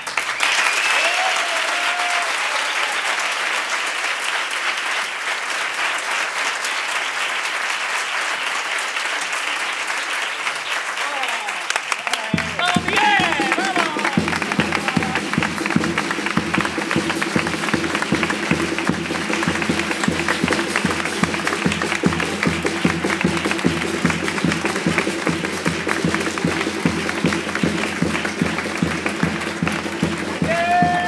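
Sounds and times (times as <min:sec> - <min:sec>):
applause: 0:00.0 - 0:31.0.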